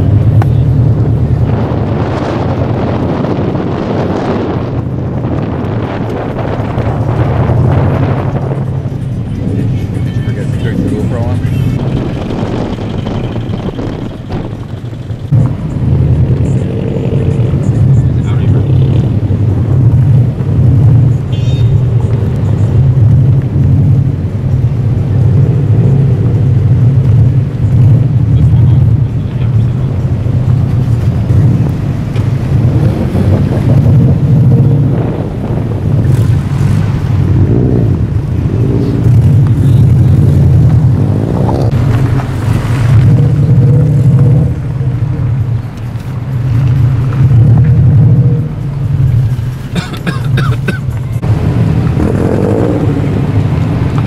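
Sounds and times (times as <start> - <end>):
car engines rumbling: 0.0 - 54.0
cars accelerating past: 0.0 - 54.0.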